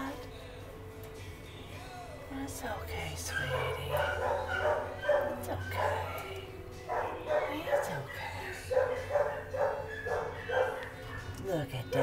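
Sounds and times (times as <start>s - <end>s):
dog barking: 3.3s - 11.4s.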